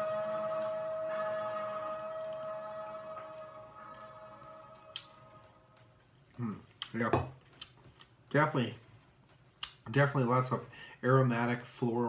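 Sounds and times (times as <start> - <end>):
steady pitched tone: 0.0 - 6.0.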